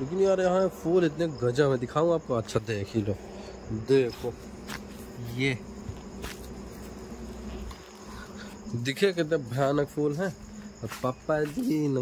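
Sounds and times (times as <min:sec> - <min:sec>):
crickets trilling: 0:00.0 - 0:12.0.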